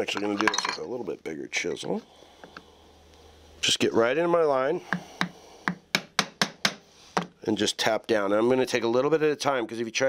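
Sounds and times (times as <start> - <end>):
mallet tapping a chisel: 4.9 - 7.3.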